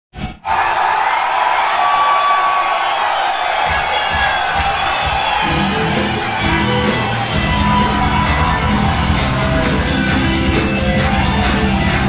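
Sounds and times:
crowd cheering and whistling: 0.2s - 12.0s
band playing low beats: 3.7s - 12.0s.

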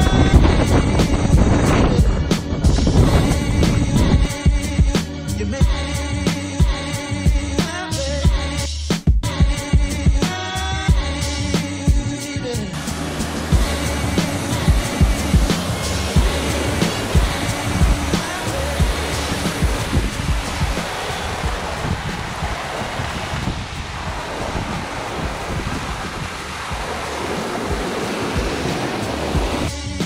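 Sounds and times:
background music with low beat: 0.0s - 30.0s
waterfall rushing over rocks: 12.8s - 29.7s.

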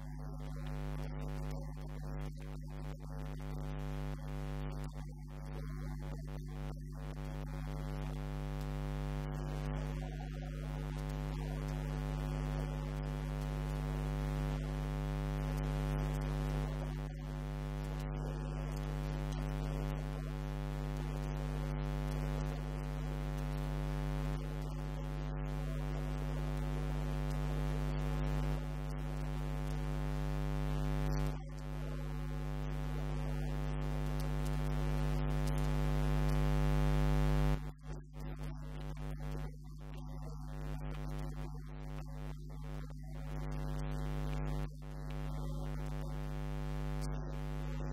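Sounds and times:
electrical mains hum: 0.0s - 47.9s.

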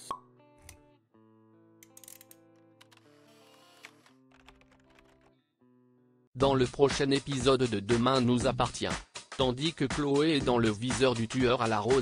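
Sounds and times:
synthetic background music: 6.4s - 12.0s.

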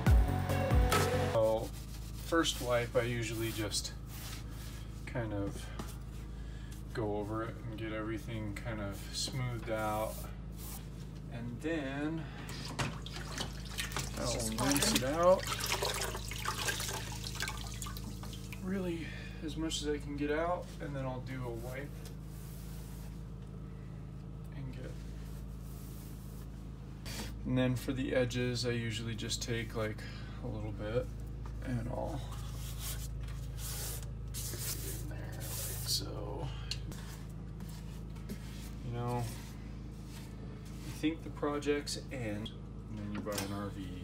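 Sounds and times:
steady low hum: 0.0s - 44.0s
scratchy rubbing strokes: 1.3s - 4.9s, 32.5s - 36.0s
water splashing and dripping: 12.8s - 18.6s.

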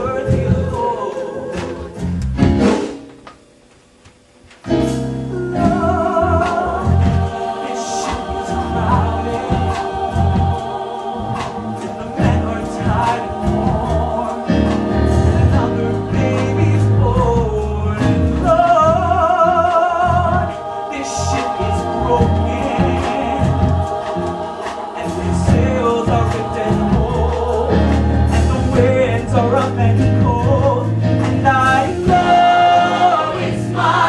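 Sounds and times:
ensemble singing with accompaniment: 0.0s - 34.0s.

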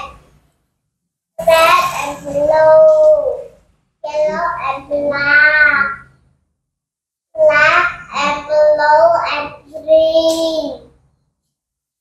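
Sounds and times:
child singing: 7.4s - 10.9s.

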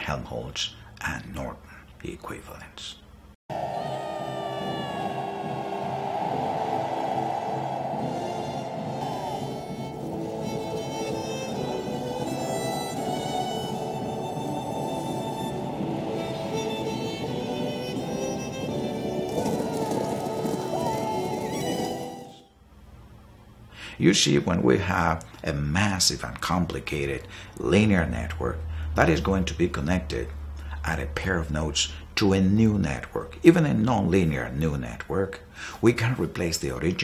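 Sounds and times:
dense steady roar: 3.5s - 21.3s
orchestral music: 3.5s - 22.5s
horses galloping: 12.8s - 22.4s.

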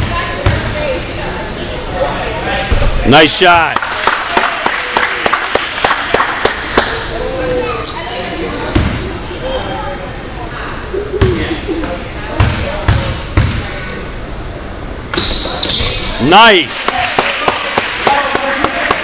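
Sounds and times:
spectators chatting: 0.0s - 19.0s
basketball bouncing on gym floor: 8.7s - 9.0s, 12.4s - 13.6s.

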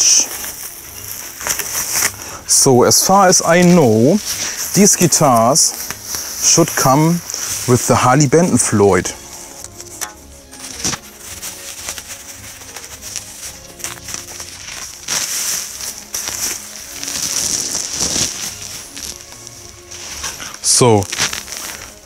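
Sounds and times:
bubble wrap crinkling and rustling: 0.0s - 22.0s
faint background music: 0.0s - 22.0s.

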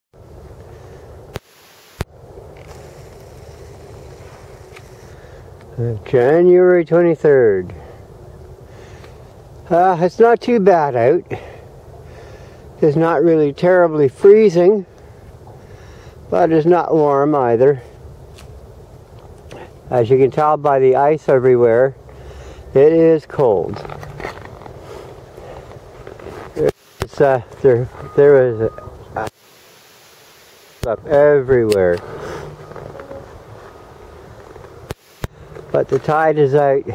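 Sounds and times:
wind rumbling on microphone: 2.1s - 6.3s, 30.8s - 35.8s
low outdoor rumble: 2.1s - 29.3s, 30.8s - 36.9s
footsteps crunching on snow: 23.6s - 28.1s, 31.9s - 36.2s.

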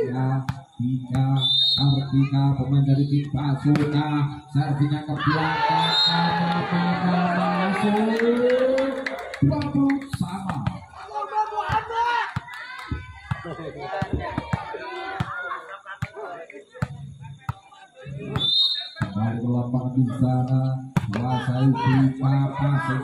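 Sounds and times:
spectators chattering: 4.6s - 19.2s
scattered claps and knocks: 8.0s - 10.8s, 11.7s - 15.4s.

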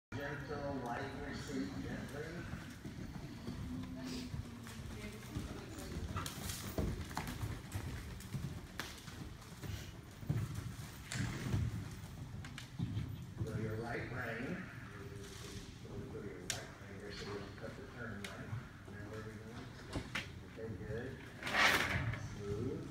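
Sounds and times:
horse hoofbeats on sand: 1.1s - 14.8s.

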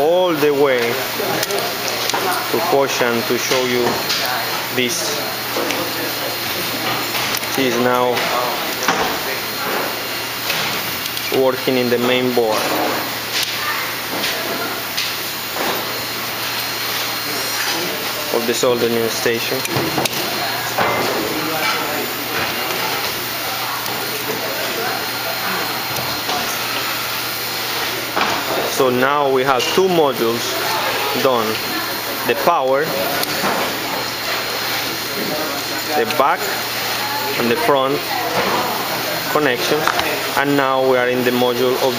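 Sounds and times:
faint voices: 0.0s - 41.9s
steady factory hiss: 0.0s - 41.9s.

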